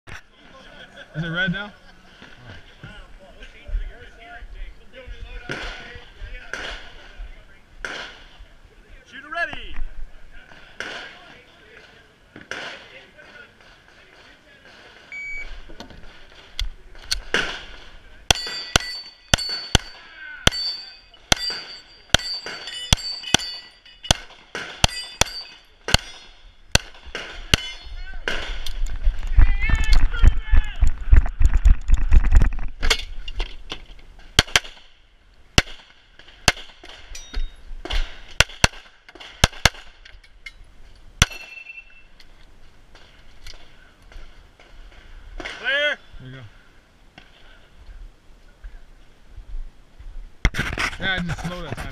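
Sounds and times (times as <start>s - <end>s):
steel plates ringing: 18.3s - 26.7s, 27.5s - 28.2s, 37.1s - 37.6s, 41.2s - 42.1s
pistol shots: 38.4s - 39.9s.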